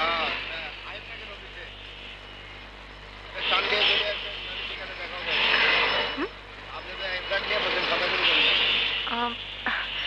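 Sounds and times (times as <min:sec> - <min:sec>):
street traffic: 0:00.0 - 0:10.0
voices: 0:00.0 - 0:10.0.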